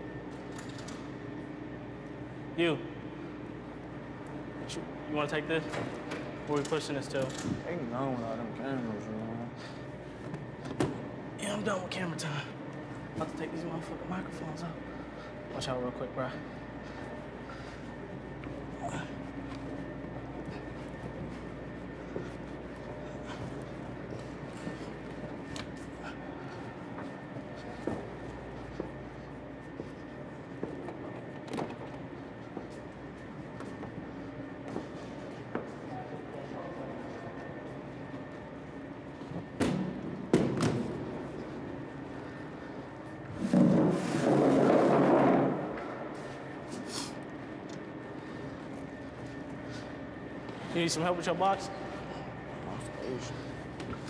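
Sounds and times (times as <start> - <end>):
steady hum: 0.0 - 54.0.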